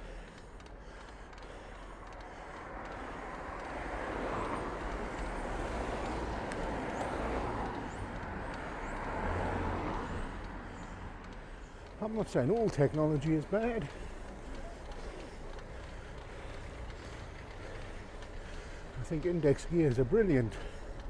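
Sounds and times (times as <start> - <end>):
low engine hum: 0.0 - 21.0
traffic on wet road: 0.0 - 21.0.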